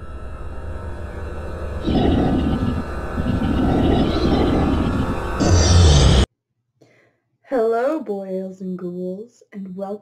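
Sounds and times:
loud grainy rumble: 0.0s - 6.3s
low steady drone: 0.0s - 6.3s.

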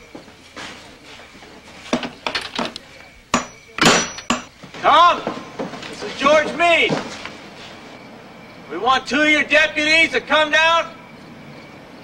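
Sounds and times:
objects clattering and knocking: 0.1s - 2.8s, 3.4s - 7.8s.

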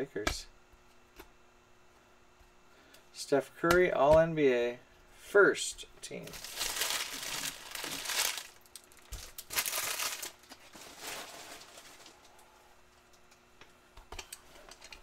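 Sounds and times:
foil wrappers crinkling: 6.3s - 12.4s.

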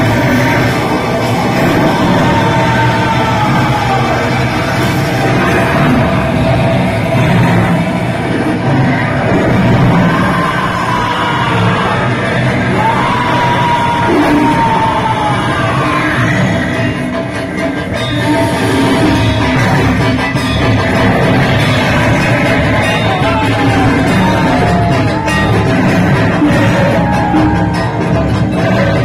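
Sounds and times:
dramatic music over loudspeakers: 0.0s - 29.0s.

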